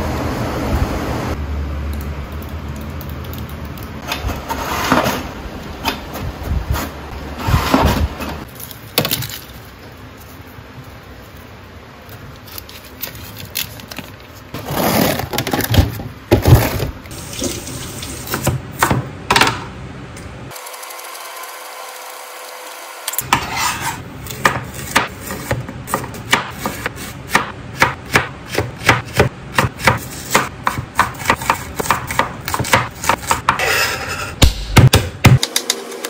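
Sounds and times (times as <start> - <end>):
knife chopping on plastic board: 24.4 - 33.6.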